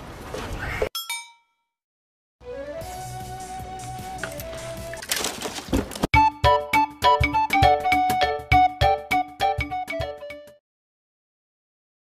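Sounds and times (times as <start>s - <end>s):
metallic bell ding: 1.0s - 1.6s.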